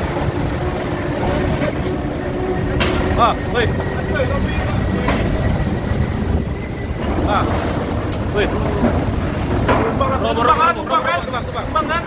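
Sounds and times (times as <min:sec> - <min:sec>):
wind buffeting microphone: 0:00.0 - 0:12.0
sharp knocks: 0:02.6 - 0:03.9.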